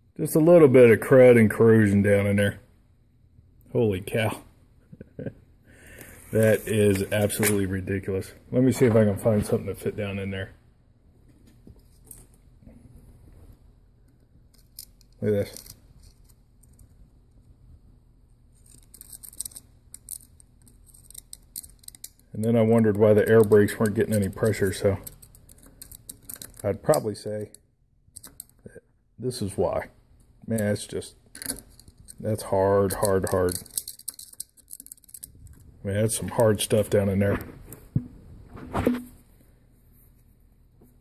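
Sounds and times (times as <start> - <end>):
rod scratching and clicking: 14.5 - 17.0, 18.5 - 27.0.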